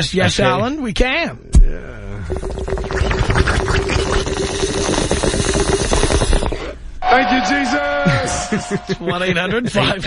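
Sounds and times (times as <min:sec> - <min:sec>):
water bubbling through a bong: 0:02.0 - 0:06.8
steady tone: 0:07.0 - 0:09.5.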